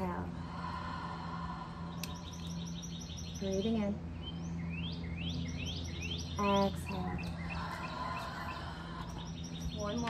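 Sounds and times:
steady low hum: 0:00.0 - 0:10.0
bird chirping rapidly: 0:02.0 - 0:10.0.

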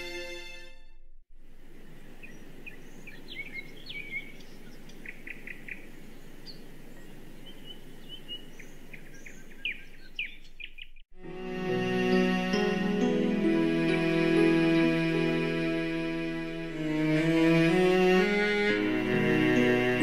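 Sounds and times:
birds chirping: 0:01.4 - 0:11.1.

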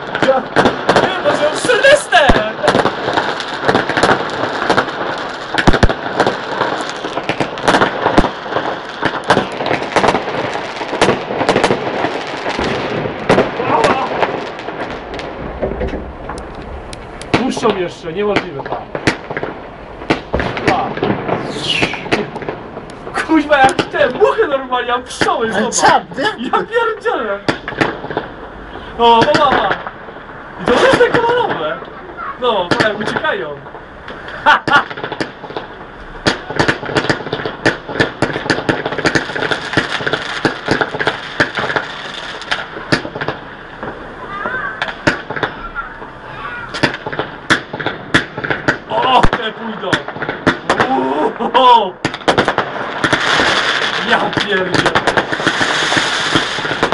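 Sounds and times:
fireworks bangs and cracks: 0:00.0 - 0:56.9
falling firework whistle: 0:21.3 - 0:22.2.

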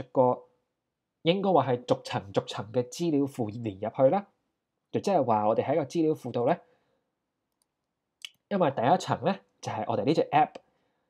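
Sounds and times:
man speaking: 0:00.0 - 0:00.6, 0:01.2 - 0:06.7, 0:08.2 - 0:10.7.

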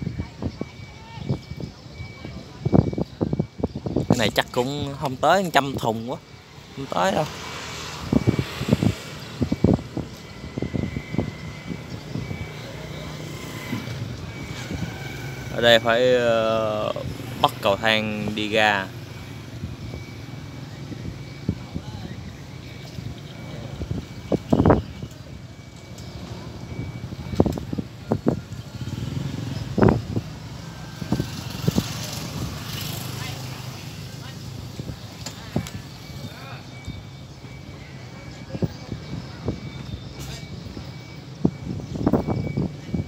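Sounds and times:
distant voices: 0:00.0 - 0:43.0.

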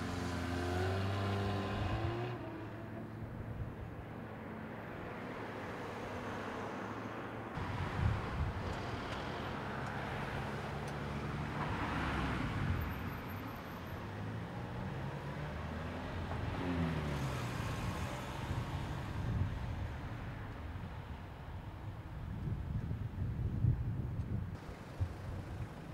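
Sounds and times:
cars passing: 0:00.0 - 0:21.4.

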